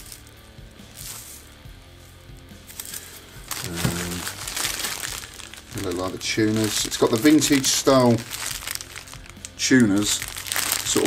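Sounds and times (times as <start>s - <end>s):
bubble wrap crinkling: 0.0s - 11.0s
faint background music: 0.0s - 11.0s.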